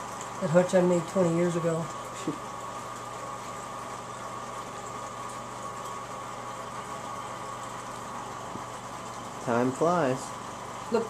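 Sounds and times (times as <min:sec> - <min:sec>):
water pump hum: 0:00.0 - 0:11.0.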